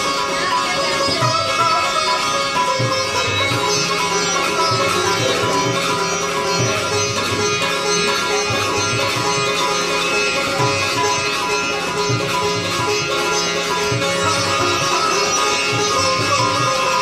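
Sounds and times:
sitar melody: 0:00.0 - 0:17.0
tabla: 0:00.0 - 0:17.0.

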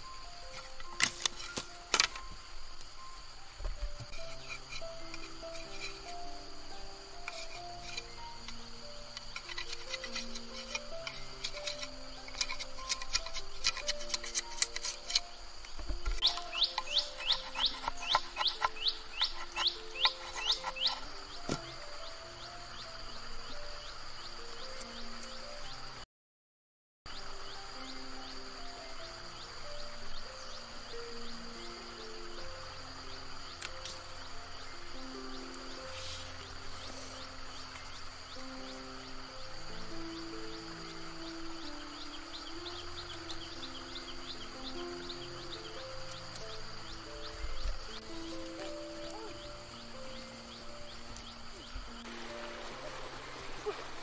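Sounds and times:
background music: 0:00.0 - 0:26.0, 0:27.1 - 0:54.0
knife scraping a stick: 0:00.4 - 0:02.4, 0:04.0 - 0:21.8, 0:35.4 - 0:38.2, 0:46.0 - 0:46.6.

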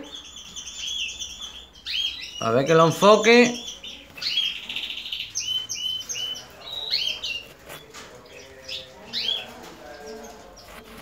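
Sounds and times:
canaries chirping: 0:00.0 - 0:11.0.

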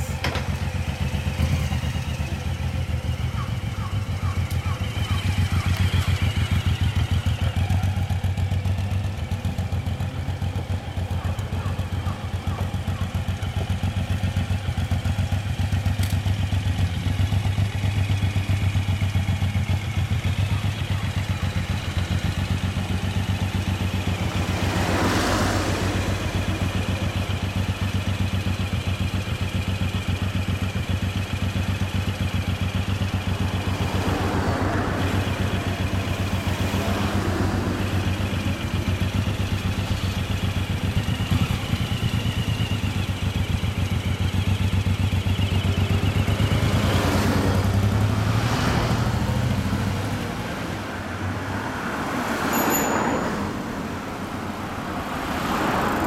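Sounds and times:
motorcycle engine idling: 0:00.0 - 0:48.2
car passing: 0:23.3 - 0:27.4, 0:33.2 - 0:40.3, 0:46.0 - 0:56.0.

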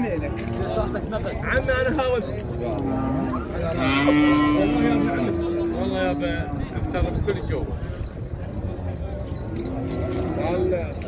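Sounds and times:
cow mooing: 0:02.6 - 0:07.1.

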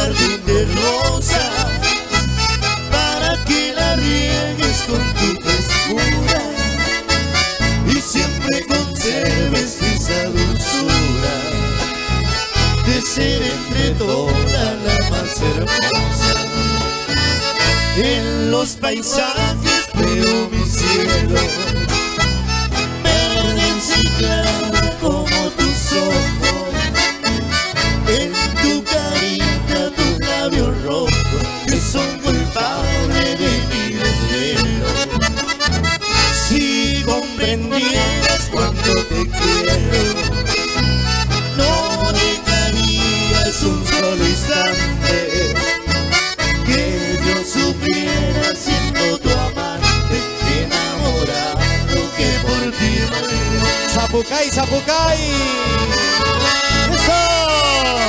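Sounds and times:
accordion melody: 0:00.0 - 0:58.0
pulsing bass beat: 0:19.4 - 0:58.0.

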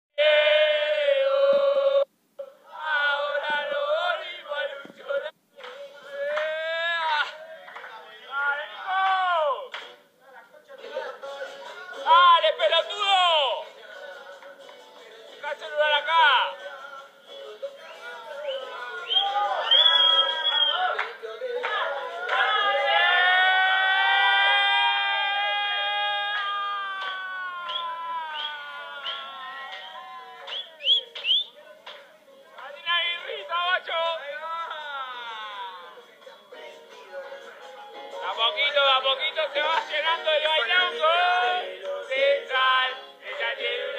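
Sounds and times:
person singing with sliding notes: 0:00.2 - 0:08.9, 0:16.4 - 0:23.7, 0:35.2 - 0:43.9
music: 0:05.6 - 0:06.2, 0:07.2 - 0:23.1, 0:29.7 - 0:33.4, 0:34.6 - 0:43.9.

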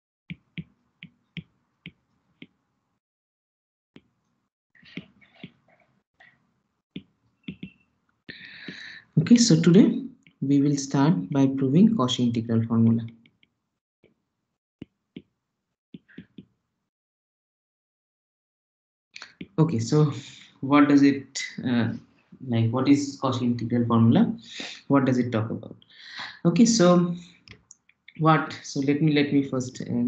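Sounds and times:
stylus tapping on glass screen: 0:00.3 - 0:02.6, 0:07.0 - 0:07.8.

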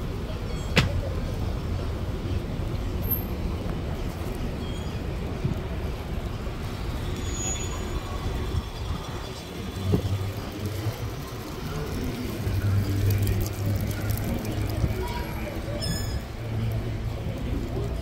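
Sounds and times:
faint voices: 0:00.0 - 0:18.0
traffic rumble: 0:00.0 - 0:18.0
sharp knock: 0:00.8 - 0:01.0.

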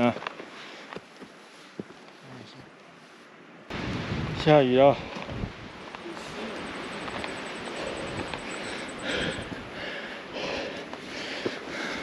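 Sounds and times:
light rain hissing: 0:01.4 - 0:10.0
person breathing hard: 0:07.7 - 0:12.0.

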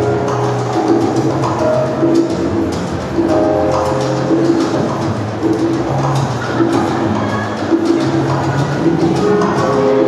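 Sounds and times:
salsa music over loudspeakers: 0:00.0 - 0:10.0.

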